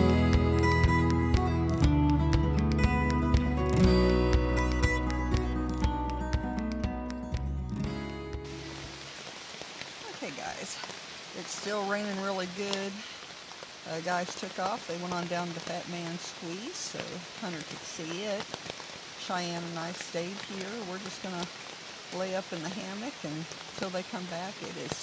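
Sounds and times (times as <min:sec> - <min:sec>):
background music: 0:00.0 - 0:09.1
steady falling rain: 0:00.0 - 0:25.0.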